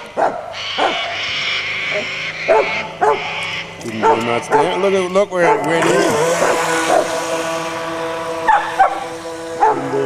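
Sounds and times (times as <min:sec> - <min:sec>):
dog barking excitedly: 0:00.2 - 0:01.0, 0:02.5 - 0:03.3, 0:05.4 - 0:05.7
toy boat motor whining: 0:00.5 - 0:10.0.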